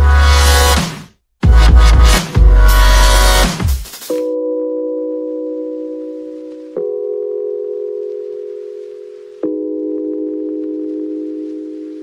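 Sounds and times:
bell-like electronic chords: 0:04.1 - 0:11.8.

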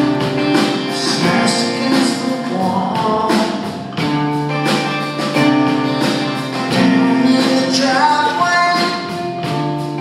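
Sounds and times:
drums: 0:00.0 - 0:10.0
electric guitar strumming: 0:00.0 - 0:10.0
man singing: 0:00.8 - 0:04.0, 0:06.7 - 0:09.3.

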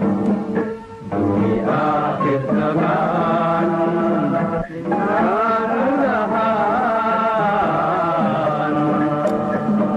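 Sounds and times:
person chanting: 0:01.4 - 0:09.9.

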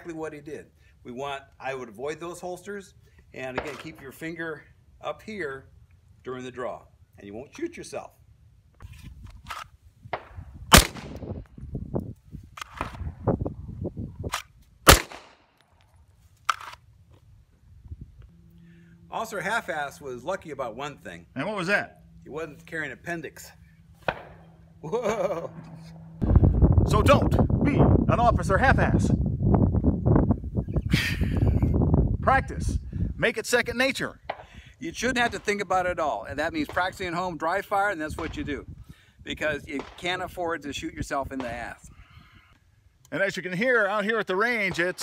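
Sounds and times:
wind on microphone: 0:08.8 - 0:14.6, 0:17.3 - 0:18.3, 0:26.2 - 0:33.3
gunshots: 0:10.2 - 0:11.2, 0:14.9 - 0:15.4, 0:24.0 - 0:24.5
men laughing: 0:24.8 - 0:26.0, 0:30.9 - 0:31.9.

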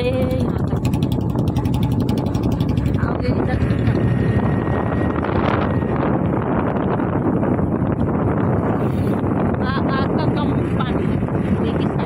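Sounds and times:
motorcycle engine: 0:00.0 - 0:12.0
wind buffeting microphone: 0:00.0 - 0:12.0.

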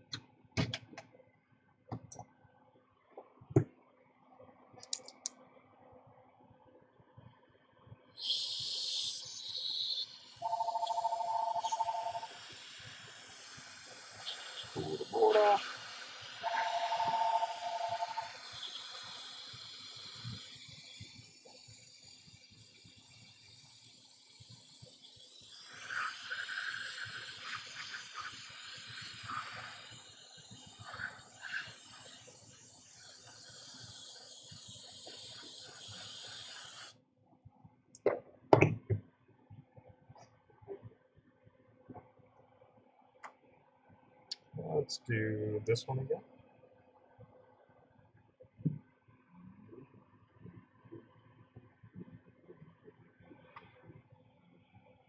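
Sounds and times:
two-tone electronic beep: 0:10.4 - 0:12.3, 0:16.5 - 0:18.3
hot air blower hissing: 0:12.2 - 0:21.1.

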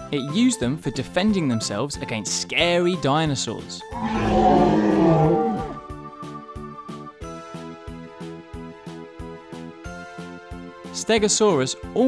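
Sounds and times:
background music: 0:00.0 - 0:12.0
dinosaur roar: 0:03.9 - 0:05.9.

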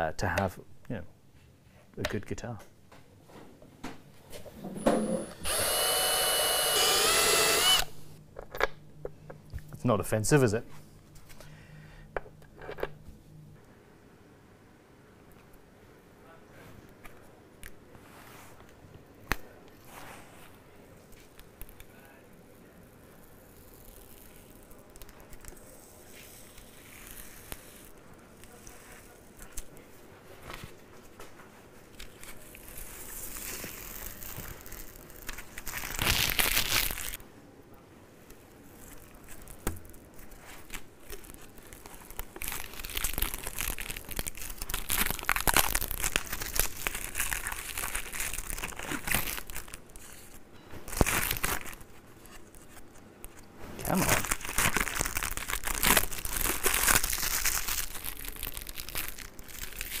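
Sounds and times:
plastic film peeling and crumpling: 0:22.6 - 0:30.6, 0:31.9 - 0:37.2, 0:38.3 - 1:00.0.

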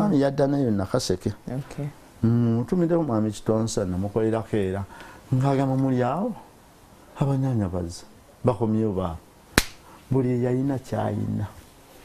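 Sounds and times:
man speaking: 0:00.0 - 0:06.5, 0:10.1 - 0:11.6.

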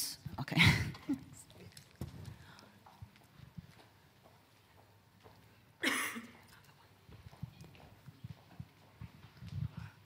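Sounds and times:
footsteps on a stage floor: 0:01.8 - 0:05.8, 0:06.8 - 0:10.0.

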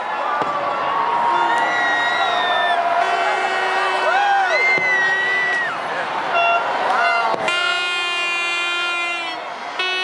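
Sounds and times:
crowd voices and whoops: 0:00.0 - 0:10.0
horn sounding steady note: 0:03.0 - 0:05.3, 0:06.3 - 0:10.0.

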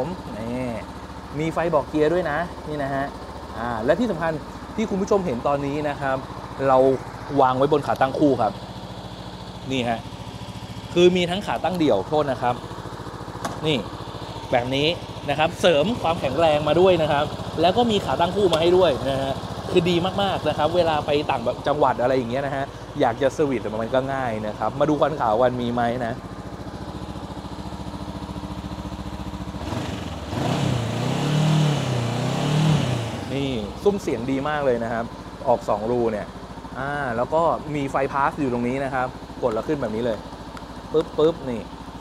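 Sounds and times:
motorcycle engine idling: 0:00.0 - 0:42.0.

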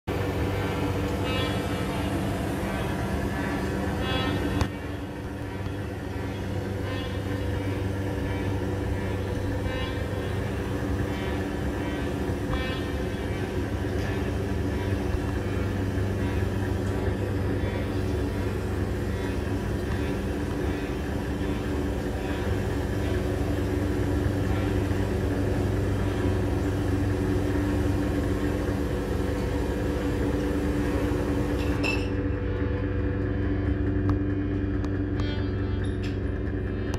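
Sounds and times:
electronic drone music: 0:00.1 - 0:36.9.

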